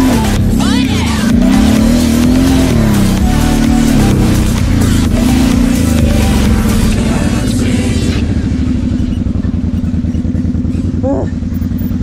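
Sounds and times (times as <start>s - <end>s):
singing in background music: 0.0s - 9.7s
quad engine running: 0.0s - 12.0s.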